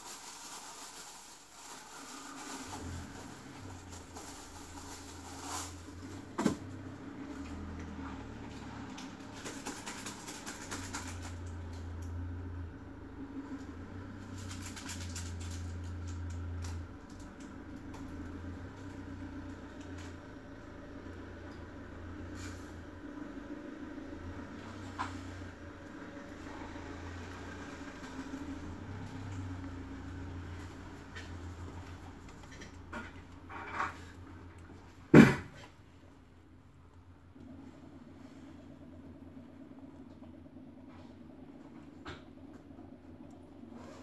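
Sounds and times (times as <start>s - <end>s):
steady low hum: 2.7s - 44.0s.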